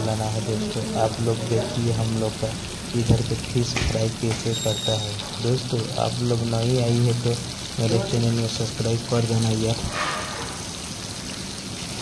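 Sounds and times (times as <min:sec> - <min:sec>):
fish sizzling in oil: 0:00.0 - 0:12.0.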